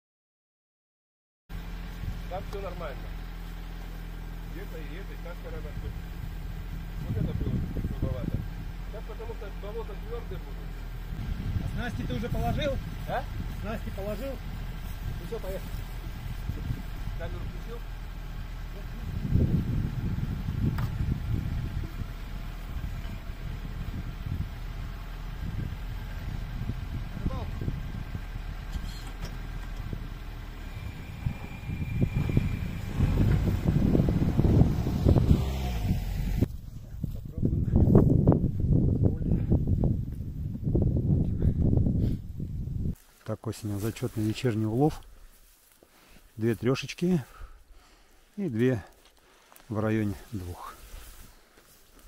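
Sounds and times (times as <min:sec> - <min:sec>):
quad bike engine idling: 0:01.5 - 0:35.3.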